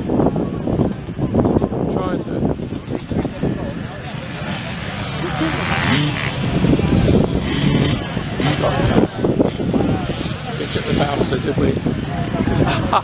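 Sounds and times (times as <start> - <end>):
motorcycle engines revving: 0.0 - 13.0
nearby voices: 2.7 - 13.0.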